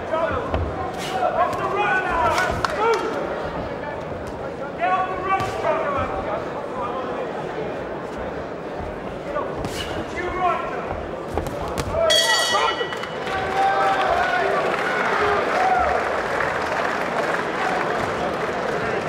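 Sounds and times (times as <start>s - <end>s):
crowd shouting and cheering: 1.2s - 6.8s, 11.7s - 19.0s
boxing ring bell: 12.1s - 13.0s.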